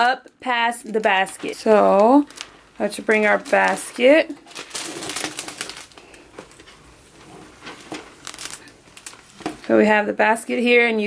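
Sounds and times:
plastic wrap crinkling: 0:00.0 - 0:10.0.

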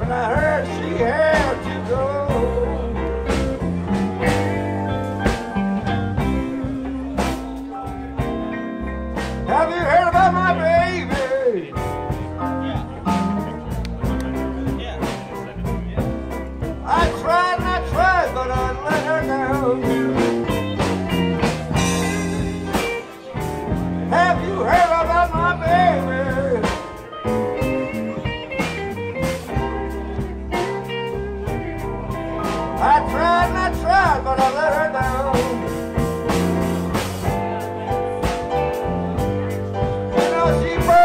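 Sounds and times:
blues-rock band playing: 0:00.0 - 0:41.0
lead guitar bending notes: 0:00.0 - 0:41.0.

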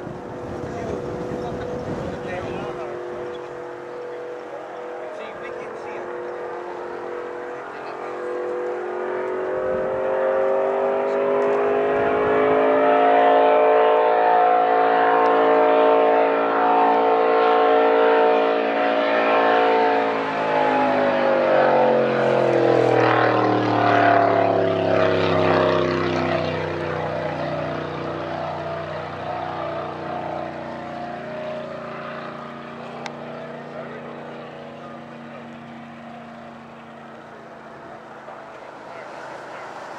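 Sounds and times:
racing boat engine passing: 0:00.0 - 0:39.9.

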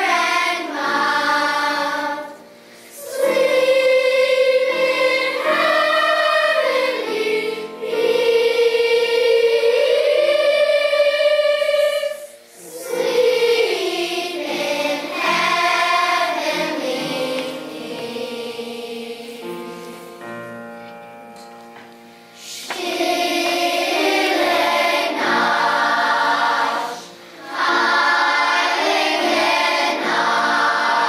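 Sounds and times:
children's choir singing: 0:00.0 - 0:20.8, 0:22.4 - 0:31.0.

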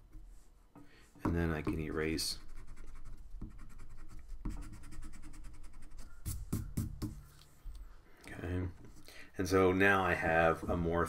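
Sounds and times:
eraser rubbing on paper: 0:02.4 - 0:06.6.

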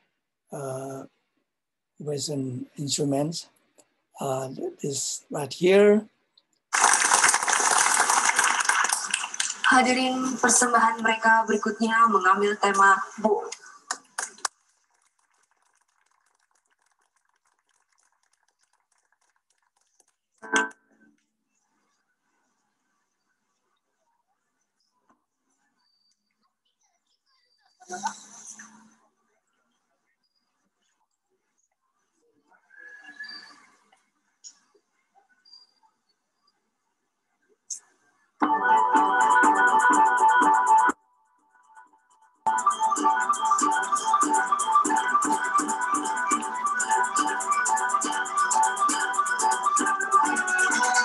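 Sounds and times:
faint broken-up music: 0:38.4 - 0:51.0.

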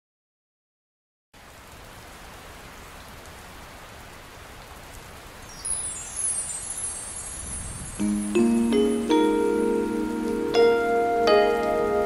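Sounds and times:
rain hiss: 0:01.4 - 0:12.0
bell-like notes descending: 0:06.3 - 0:12.0.

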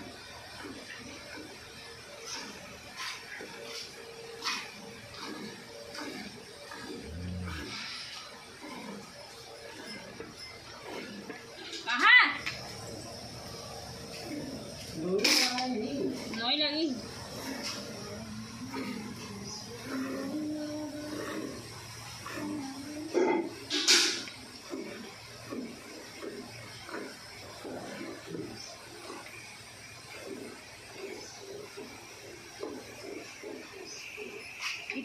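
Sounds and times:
milk streams hissing into bucket: 0:00.0 - 0:35.0.

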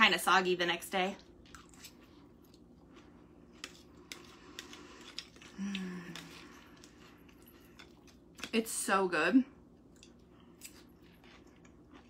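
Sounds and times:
person chewing salad: 0:01.2 - 0:08.6, 0:09.7 - 0:12.0
person humming: 0:05.5 - 0:06.3.

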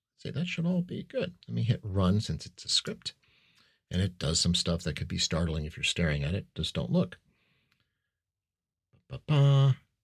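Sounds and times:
person speaking: 0:09.1 - 0:10.0.

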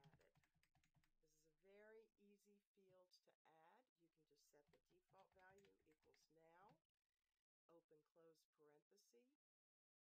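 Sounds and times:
typing on computer keyboard: 0:00.0 - 0:01.2, 0:05.2 - 0:06.2
person speaking: 0:04.4 - 0:06.8.

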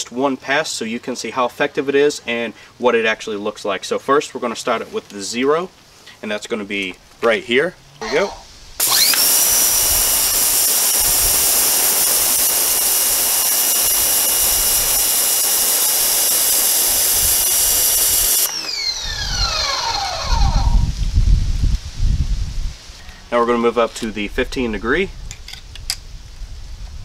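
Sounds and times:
pressure washer whine: 0:08.0 - 0:21.1
water jet hissing on concrete: 0:08.8 - 0:18.9
low rumbling: 0:18.7 - 0:22.8.

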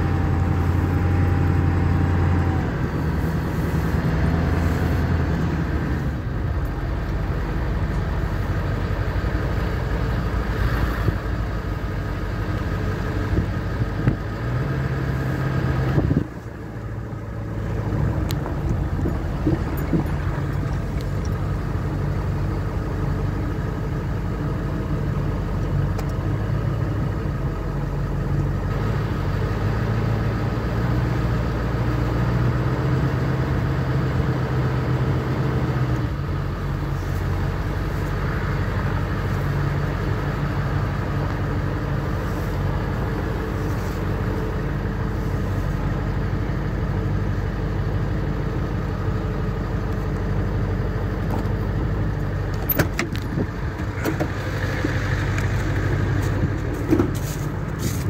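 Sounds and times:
truck engine running: 0:00.0 - 0:58.0.

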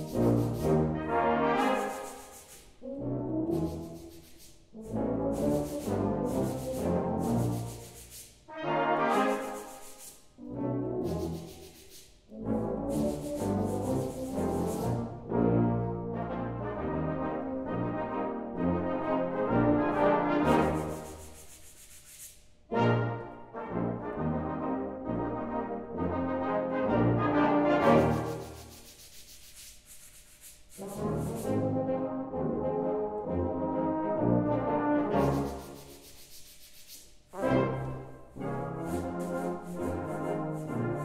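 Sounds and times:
sandpaper blocks rubbing: 0:00.0 - 0:01.0, 0:01.6 - 0:02.8, 0:03.5 - 0:10.4, 0:11.0 - 0:12.3, 0:12.9 - 0:15.0, 0:20.5 - 0:22.5, 0:27.8 - 0:31.6, 0:35.2 - 0:37.3, 0:38.8 - 0:41.0
brass band playing: 0:00.0 - 0:02.0, 0:04.8 - 0:07.7, 0:08.5 - 0:09.5, 0:12.3 - 0:20.8, 0:22.7 - 0:28.4, 0:30.8 - 0:35.4, 0:37.3 - 0:41.0.

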